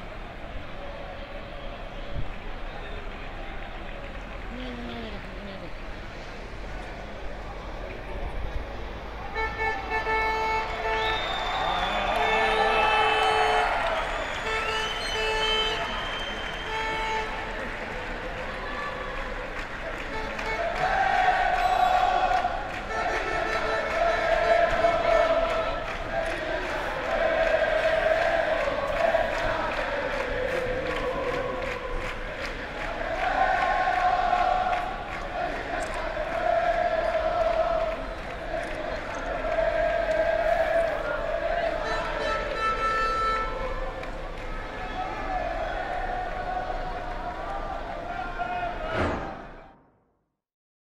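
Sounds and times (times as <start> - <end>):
horn blasts: 9.2 - 18.0, 19.9 - 26.6, 39.5 - 45.4
crowd chanting and singing: 9.8 - 49.8.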